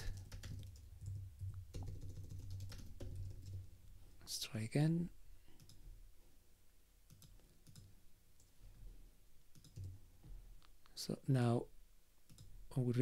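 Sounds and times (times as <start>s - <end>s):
faint mouse clicks: 5.6s - 5.8s.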